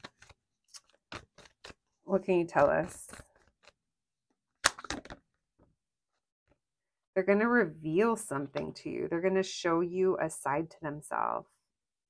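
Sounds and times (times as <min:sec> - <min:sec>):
cards snapping: 0:04.6 - 0:05.2.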